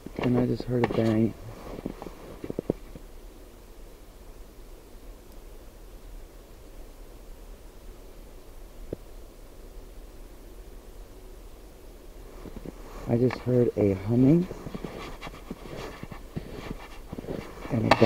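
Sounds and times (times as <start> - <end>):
steady hiss: 0.0 - 18.0.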